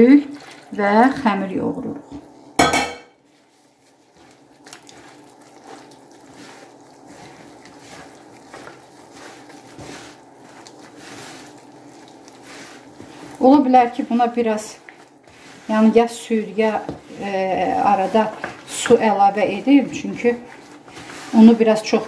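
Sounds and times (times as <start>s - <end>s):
wet dough squishing: 0.0s - 2.6s, 3.2s - 22.0s.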